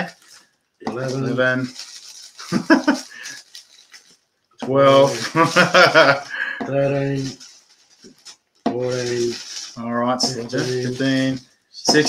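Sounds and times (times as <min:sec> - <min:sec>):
plastic bag crinkling: 0:00.0 - 0:12.0
man laughing: 0:02.4 - 0:03.3, 0:05.1 - 0:06.7.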